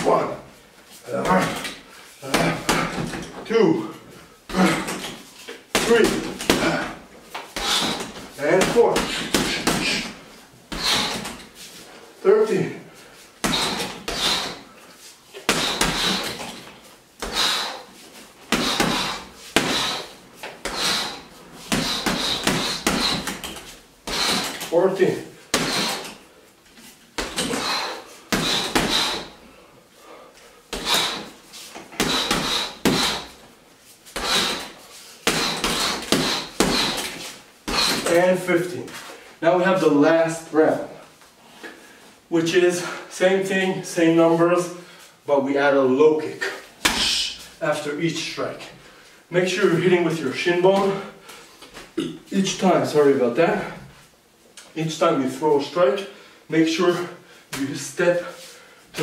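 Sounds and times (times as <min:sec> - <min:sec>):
punches thudding on heavy bag: 0:01.2 - 0:03.3, 0:04.5 - 0:07.0, 0:07.6 - 0:11.5, 0:13.4 - 0:14.6, 0:15.5 - 0:16.6, 0:18.5 - 0:24.7, 0:25.5 - 0:26.2, 0:27.2 - 0:29.4, 0:30.7 - 0:33.4, 0:34.2 - 0:38.2.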